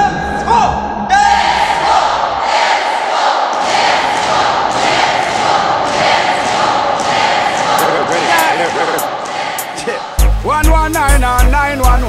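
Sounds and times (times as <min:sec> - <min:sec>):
crowd shouting together: 0:01.1 - 0:10.3.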